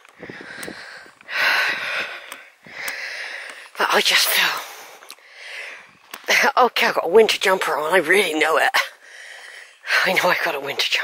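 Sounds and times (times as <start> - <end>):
person breathing hard: 0.0 - 3.8, 4.6 - 6.0, 8.9 - 10.0.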